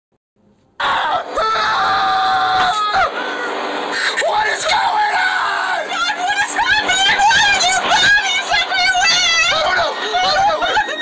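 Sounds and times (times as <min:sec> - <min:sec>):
person crying out: 0:00.8 - 0:07.4, 0:09.0 - 0:11.0
person screaming: 0:00.8 - 0:11.0.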